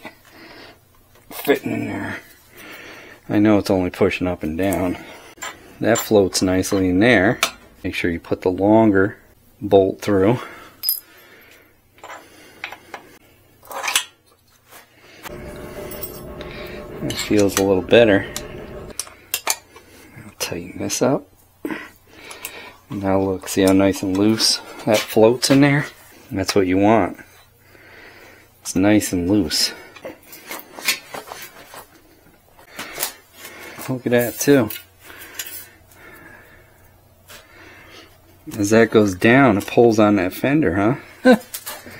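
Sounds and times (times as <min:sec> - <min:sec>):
steady low rumble: 0:15.3 - 0:19.0.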